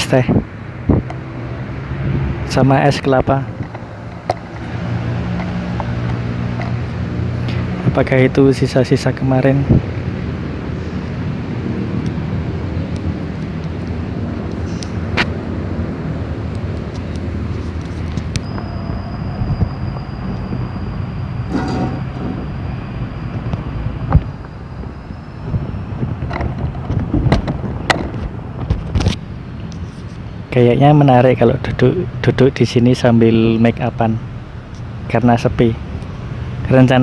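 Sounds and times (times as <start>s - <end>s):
faint high whine: 18.4s - 25.8s.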